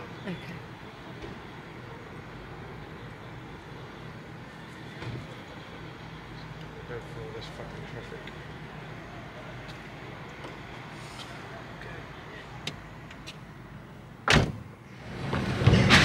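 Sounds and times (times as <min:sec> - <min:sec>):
vehicle idling: 0:00.0 - 0:16.0
car door shutting: 0:14.2 - 0:14.7
vehicle moving off: 0:14.9 - 0:16.0.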